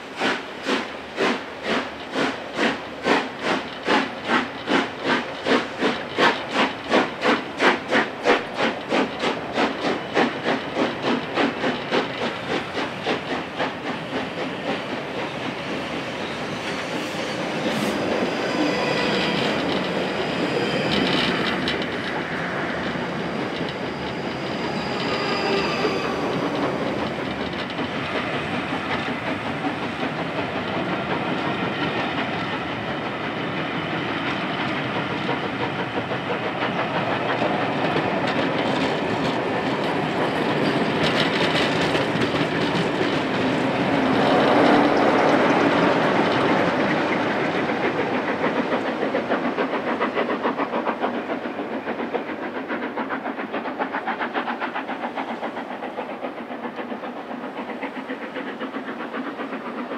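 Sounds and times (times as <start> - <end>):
electric train passing: 0.0 - 59.9
train wheels clacking over rail joints: 0.0 - 59.9.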